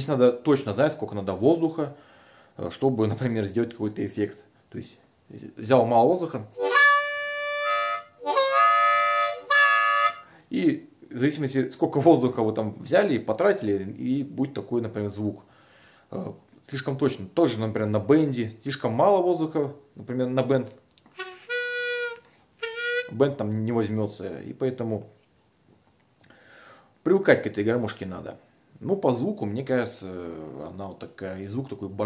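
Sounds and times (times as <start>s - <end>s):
harmonica chords: 6.5s - 10.4s, 21.1s - 23.3s.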